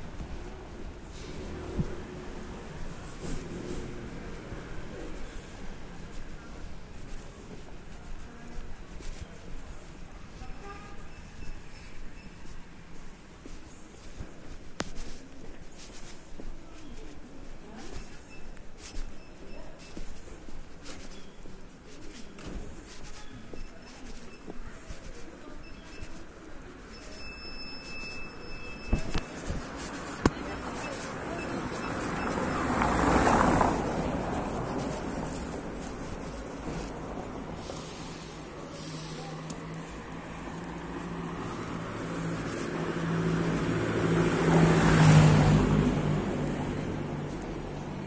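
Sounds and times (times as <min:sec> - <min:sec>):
vehicle passing: 0:00.0 - 0:10.4, 0:27.9 - 0:48.0
engine hum: 0:29.1 - 0:48.0.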